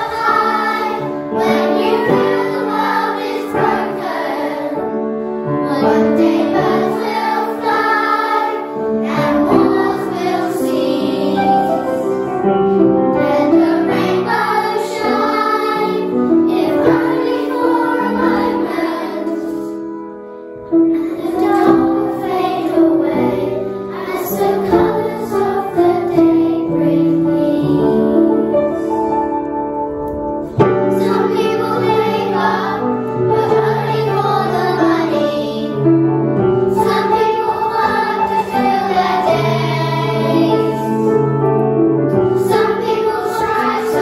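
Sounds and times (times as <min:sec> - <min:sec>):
children's choir singing: 0:00.0 - 0:29.5, 0:30.4 - 0:44.0.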